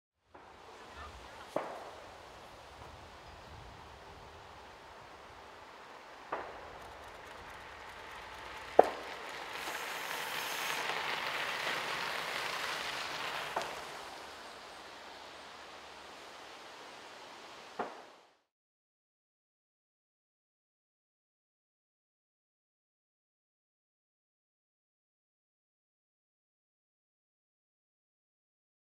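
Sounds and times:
bicycle tyres crunching on gravel: 0.4 - 18.1.

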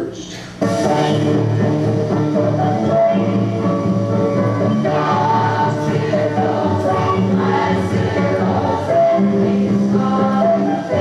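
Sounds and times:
group of voices singing: 0.6 - 11.0
instrumental accompaniment: 0.6 - 11.0.

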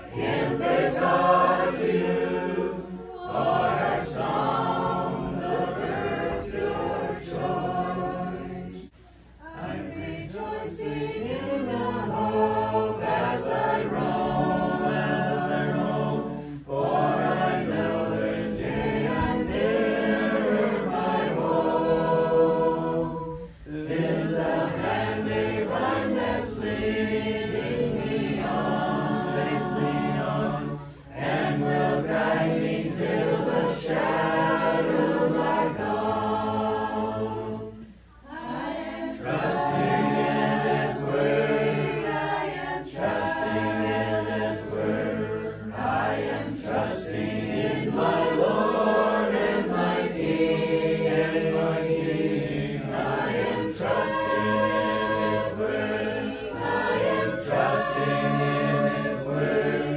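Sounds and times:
group singing a cappella: 0.0 - 59.9.

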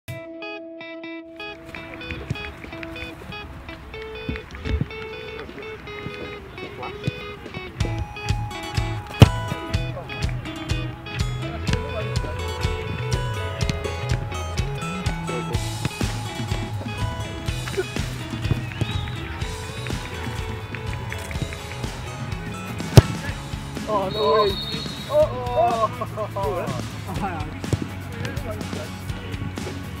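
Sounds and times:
background music: 0.1 - 30.0
low bass line: 5.7 - 24.1.

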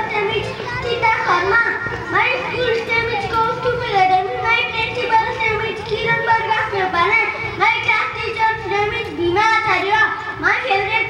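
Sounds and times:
child talking: 0.0 - 11.0
children chattering: 0.0 - 11.0.

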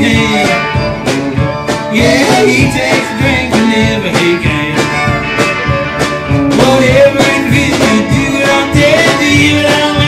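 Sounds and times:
man singing: 0.0 - 1.0, 1.8 - 10.0
electric guitar: 0.0 - 10.0
steady drum beat: 0.0 - 10.0.

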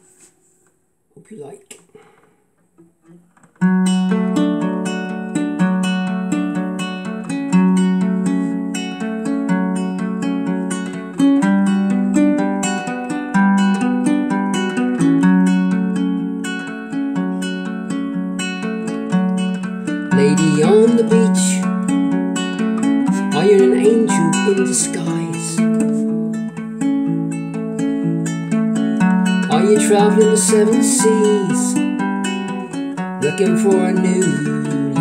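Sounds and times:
ukulele strumming: 3.0 - 35.0.

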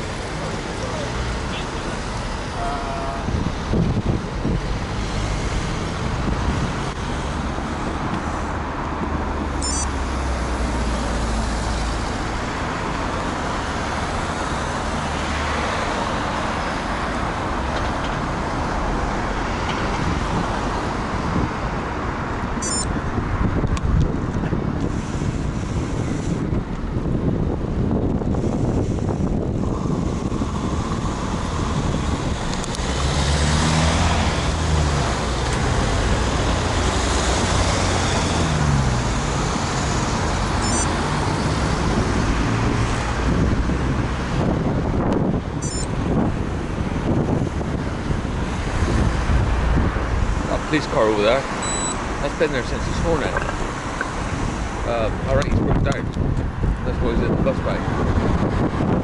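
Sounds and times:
road traffic: 0.0 - 59.0
wind rumbling on microphone: 0.0 - 59.0
car engine passing close: 28.6 - 59.0.

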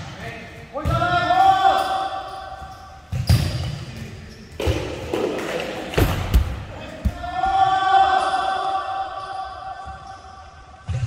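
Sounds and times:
players' voices: 0.0 - 10.4
ball bouncing on gym floor: 3.1 - 7.5.

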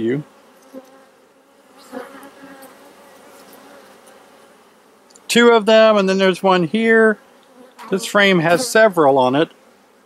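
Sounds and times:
honey bees buzzing: 0.0 - 10.0.

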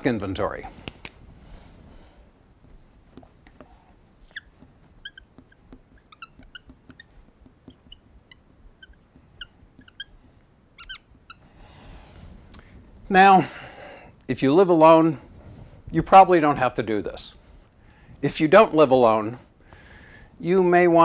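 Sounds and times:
marker squeaking on whiteboard: 0.4 - 0.9, 2.5 - 12.2.

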